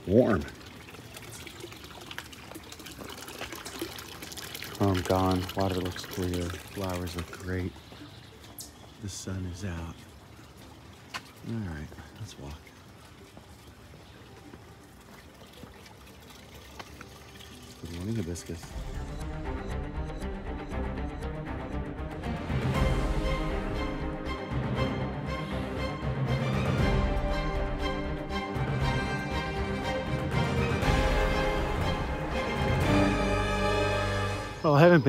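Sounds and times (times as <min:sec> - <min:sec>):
water trickling and splashing: 0:00.0 - 0:20.8, 0:22.2 - 0:35.0.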